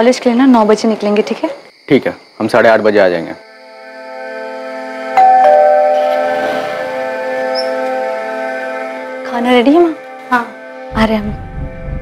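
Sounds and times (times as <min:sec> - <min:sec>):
held dramatic chord: 0:04.2 - 0:10.8.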